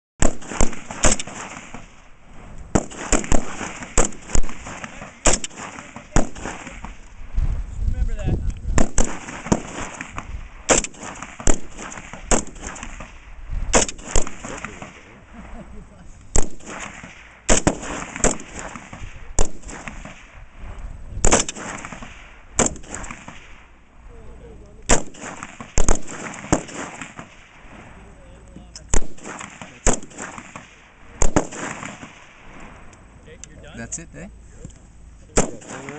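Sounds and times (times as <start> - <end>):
other rifles firing: 0.2 - 2.0, 2.7 - 7.0, 8.7 - 15.1, 16.3 - 20.4, 21.2 - 23.7, 24.9 - 27.6, 28.9 - 32.5, 35.4 - 35.9
rifle single shots: 0.2 - 2.1, 2.7 - 7.1, 8.7 - 15.2, 16.3 - 20.5, 21.2 - 23.8, 24.8 - 27.9, 28.8 - 32.7, 35.3 - 35.9.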